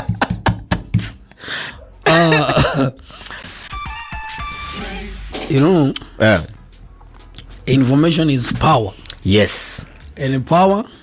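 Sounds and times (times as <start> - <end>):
radio ident electronic tones: 3.7 - 5.3.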